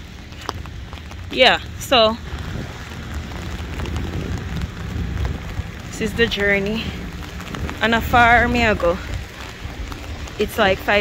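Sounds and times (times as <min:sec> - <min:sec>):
low rumble: 0:00.0 - 0:11.0
rain on an umbrella: 0:00.0 - 0:11.0.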